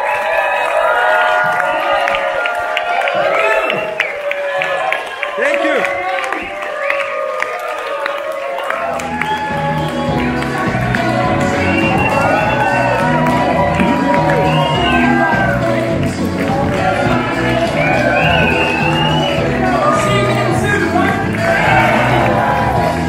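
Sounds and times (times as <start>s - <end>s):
audience cheering and whooping: 0.0s - 23.0s
music with bass beat: 9.2s - 23.0s.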